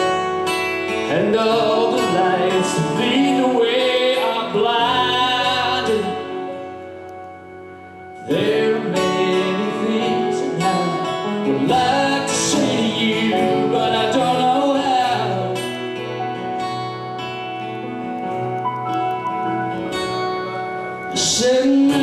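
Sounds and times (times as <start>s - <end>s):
live band with acoustic guitar: 0.0s - 22.0s.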